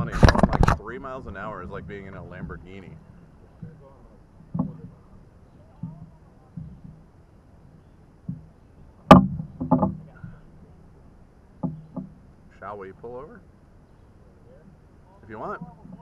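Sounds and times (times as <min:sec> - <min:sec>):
paddles knocking on canoe hull: 0:01.4 - 0:07.1, 0:08.2 - 0:08.5, 0:11.6 - 0:12.2.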